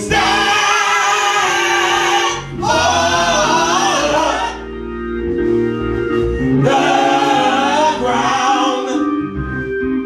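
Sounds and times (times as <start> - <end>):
gospel singing: 0.0 - 9.6
steady musical accompaniment: 0.0 - 10.0.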